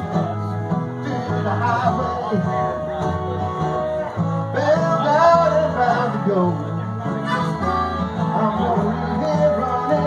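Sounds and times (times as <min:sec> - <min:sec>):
bending lead guitar line: 0:00.0 - 0:10.0
live blues band: 0:00.0 - 0:10.0.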